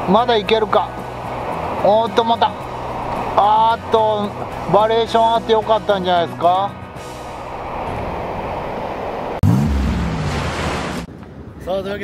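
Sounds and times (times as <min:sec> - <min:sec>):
waves breaking: 0:00.0 - 0:11.8
low swooping sound: 0:00.8 - 0:11.7
wind on microphone: 0:07.1 - 0:09.4.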